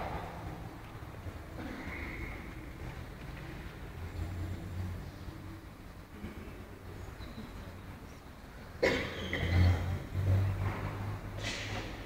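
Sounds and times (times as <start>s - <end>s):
person coughing: 8.8s - 9.7s.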